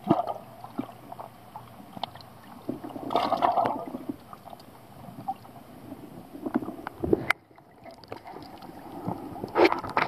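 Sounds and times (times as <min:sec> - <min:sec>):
muffled underwater sloshing: 0:00.0 - 0:10.0
water splash and gurgle: 0:00.0 - 0:10.0.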